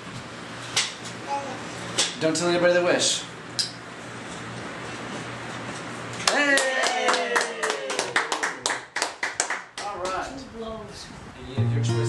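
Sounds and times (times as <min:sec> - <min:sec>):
voices cheering: 0:06.2 - 0:08.6
small group clapping: 0:06.2 - 0:10.2.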